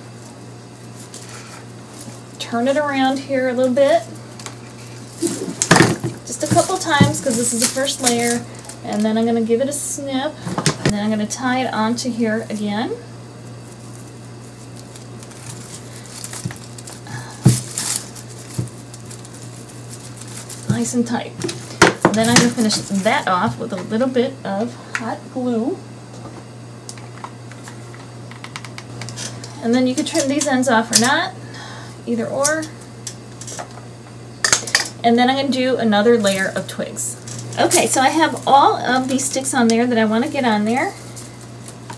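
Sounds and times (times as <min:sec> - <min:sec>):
steady low hum: 0:00.0 - 0:41.9
twigs clicking and crackling: 0:04.0 - 0:09.2, 0:13.4 - 0:21.0, 0:37.2 - 0:41.9
twine wrapped around twigs: 0:13.4 - 0:21.1.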